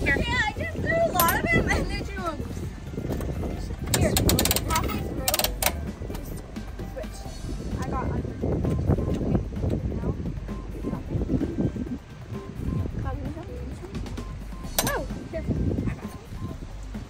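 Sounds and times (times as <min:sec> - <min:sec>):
metal crank ratcheting clicks: 0:03.2 - 0:05.9.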